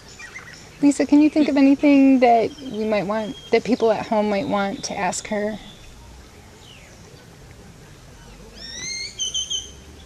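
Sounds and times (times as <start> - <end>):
bird whistling call: 2.6 - 3.6, 8.6 - 9.8.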